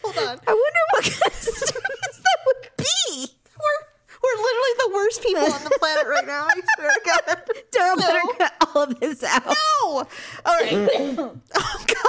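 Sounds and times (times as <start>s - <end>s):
woman coughing and clearing throat: 10.5s - 12.0s.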